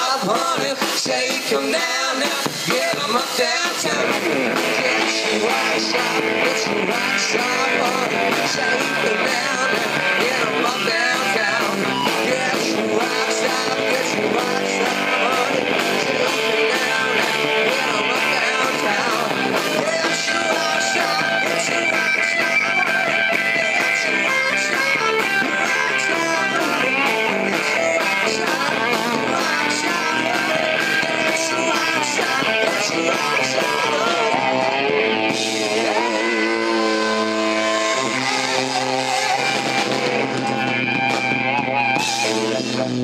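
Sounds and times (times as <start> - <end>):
live rock band playing: 0.0 - 43.0
ringing guitar chords: 2.9 - 43.0.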